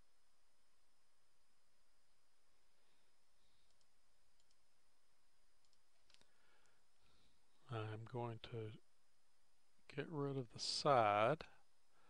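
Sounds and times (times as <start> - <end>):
faint high steady whine: 0.0 - 12.0
computer mouse clicks: 3.6 - 4.7, 5.6 - 6.8.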